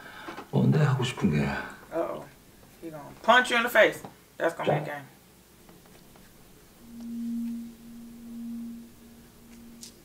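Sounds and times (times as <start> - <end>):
low sustained pure tone: 6.8 - 10.0.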